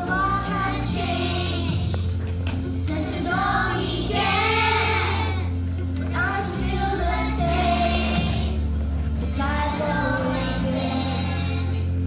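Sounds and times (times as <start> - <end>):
children singing: 0.0 - 2.1, 2.8 - 8.7, 9.3 - 11.9
musical accompaniment: 0.0 - 12.0.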